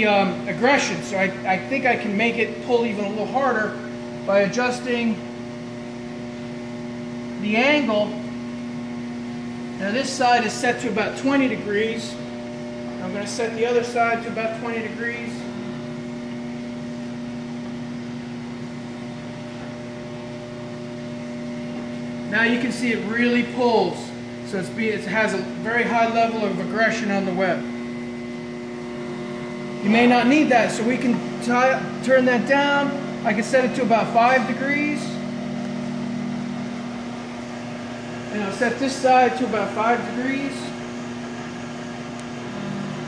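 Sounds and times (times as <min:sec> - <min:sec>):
machine rollers humming: 0:00.0 - 0:43.0
constant machine tones: 0:07.0 - 0:43.0.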